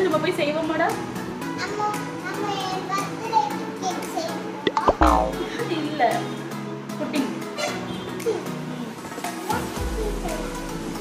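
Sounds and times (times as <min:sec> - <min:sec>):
background music: 0:04.5 - 0:06.9.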